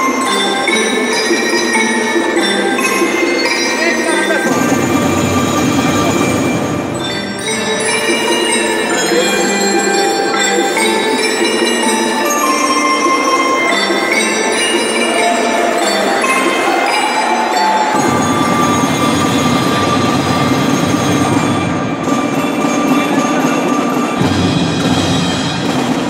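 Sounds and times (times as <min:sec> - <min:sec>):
lower percussion layer: 0:00.0 - 0:26.0
mallet percussion ringing notes: 0:00.0 - 0:26.0.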